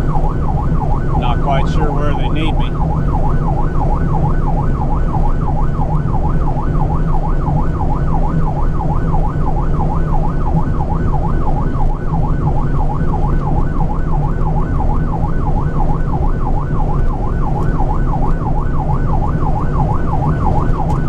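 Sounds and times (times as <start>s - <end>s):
emergency siren yelping: 0.0s - 21.0s
truck engine and road drone: 0.0s - 21.0s.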